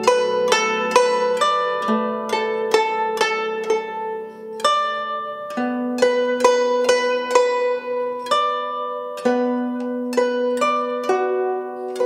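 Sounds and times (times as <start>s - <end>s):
plucked zither notes: 0.0s - 12.0s.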